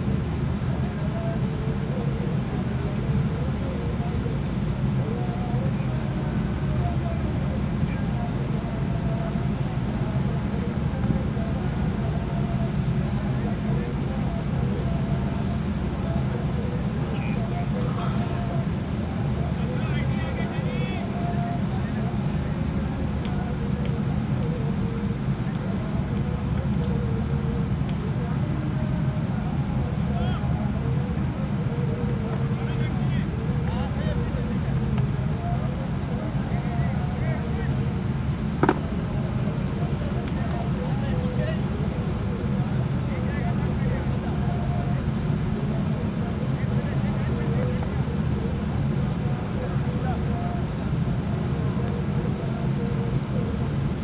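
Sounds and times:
faint voices calling: 0:00.0 - 0:54.0
low outdoor rumble: 0:00.0 - 0:54.0.

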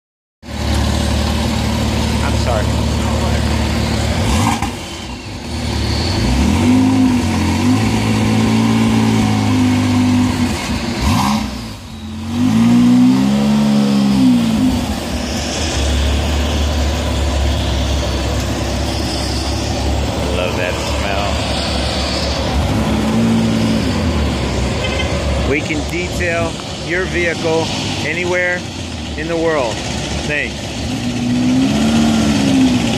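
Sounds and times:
car engine idling and revving: 0:00.4 - 0:32.9.

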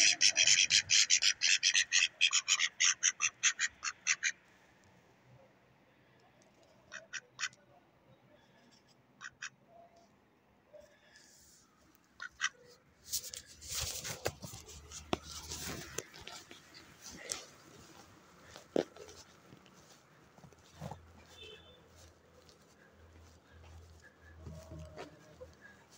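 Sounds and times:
ducks quacking: 0:00.0 - 0:04.4, 0:06.8 - 0:07.7, 0:09.2 - 0:09.6, 0:12.2 - 0:12.8, 0:14.8 - 0:25.9
rustling noise: 0:13.0 - 0:25.9.

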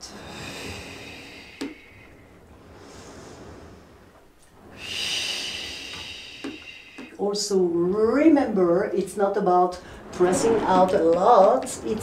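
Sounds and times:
woman breathing: 0:00.0 - 0:07.2, 0:09.8 - 0:10.2.

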